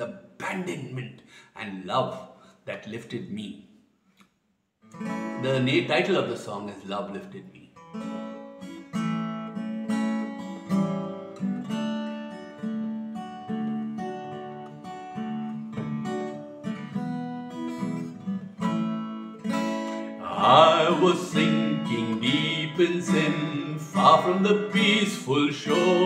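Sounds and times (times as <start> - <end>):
acoustic guitar strumming chords: 4.9 - 5.9, 7.8 - 26.0.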